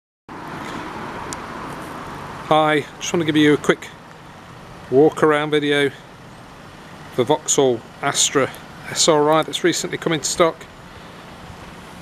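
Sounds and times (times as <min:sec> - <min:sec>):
road traffic: 0:00.3 - 0:12.0.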